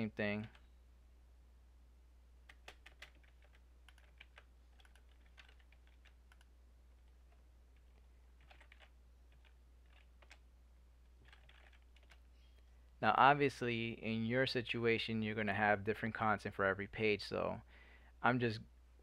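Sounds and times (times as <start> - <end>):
typing on computer keyboard: 2.5 - 10.4, 11.2 - 12.3.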